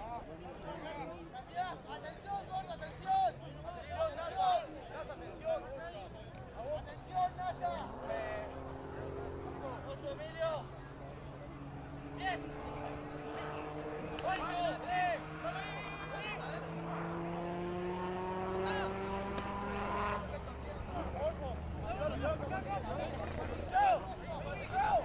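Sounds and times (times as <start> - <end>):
vehicle engine accelerating: 6.6 - 25.0
players shouting: 14.0 - 16.6, 20.4 - 25.0.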